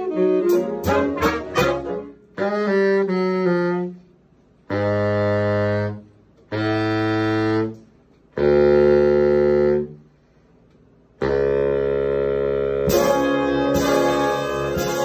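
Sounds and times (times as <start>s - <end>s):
saxophone and trombone chords: 0.0s - 10.0s, 11.2s - 15.0s.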